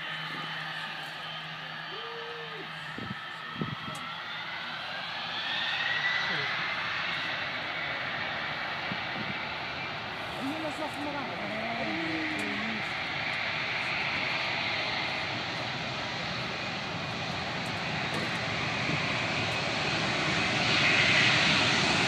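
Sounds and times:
distant jet engines at takeoff: 0.0s - 22.0s.

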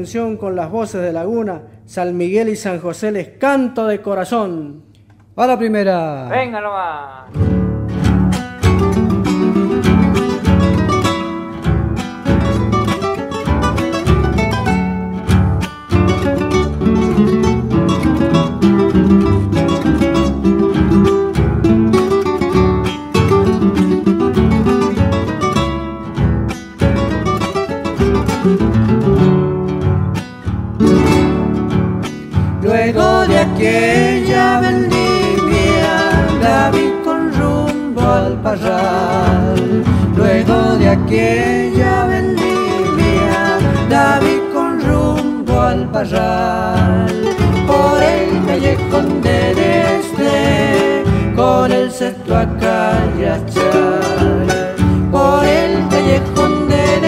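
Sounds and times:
acoustic guitars strumming: 7.3s - 57.0s
people singing: 32.6s - 57.0s.

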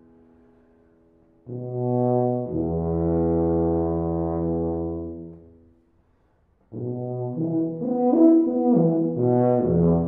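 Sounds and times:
tuba low sustained note: 1.4s - 5.7s, 6.7s - 10.0s.

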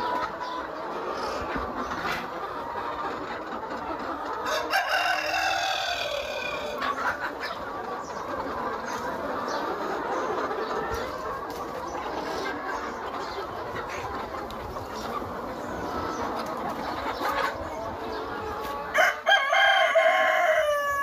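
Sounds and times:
chickens clucking: 0.0s - 21.0s
rooster crowing: 4.5s - 6.5s, 18.9s - 21.0s.

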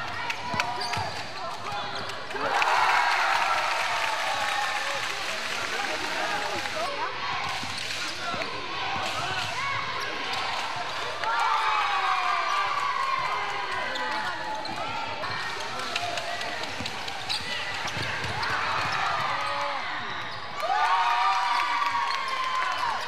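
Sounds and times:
voices in a hall: 0.0s - 23.0s.

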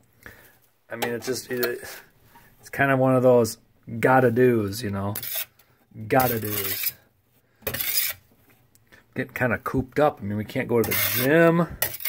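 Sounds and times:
metal shovel scraping: 5.1s - 7.0s, 7.6s - 8.3s, 10.7s - 12.0s.

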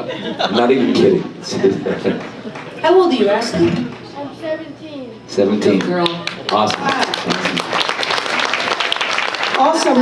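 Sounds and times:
audience applauding: 2.0s - 3.0s, 5.7s - 10.0s.

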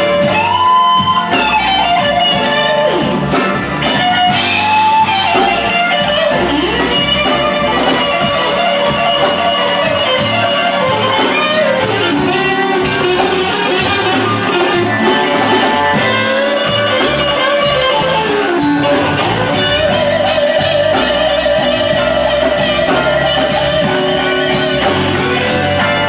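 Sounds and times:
drum beat: 0.0s - 26.0s
electric guitar lead: 0.0s - 26.0s.

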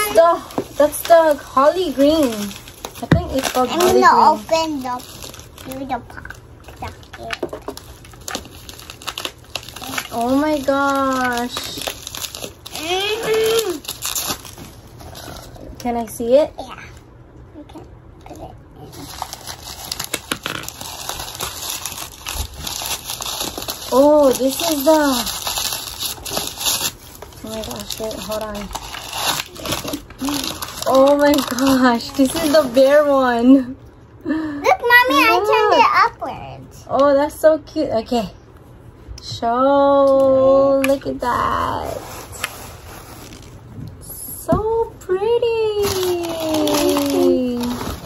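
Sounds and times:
bubble wrap crinkles: 0.0s - 15.8s, 18.8s - 33.6s, 40.9s - 44.1s, 45.4s - 48.0s.

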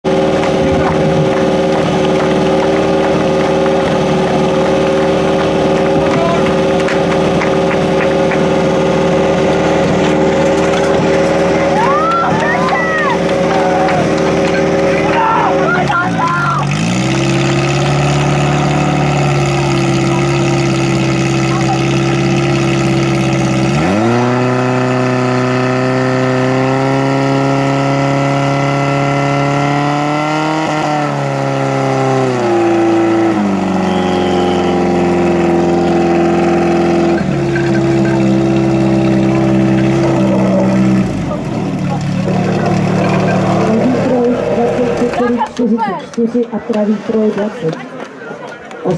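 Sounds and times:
fire pump engine running: 0.0s - 48.9s.

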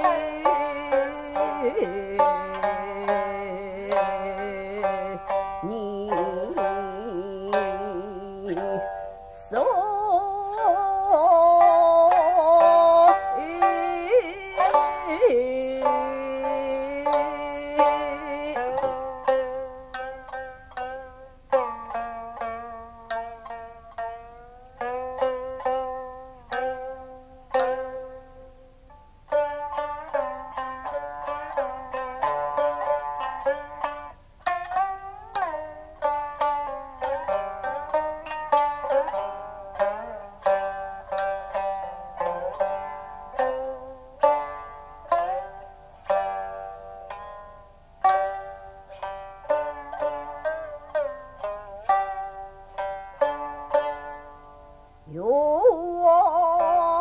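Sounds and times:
shamisen plucked notes: 0.0s - 57.0s.

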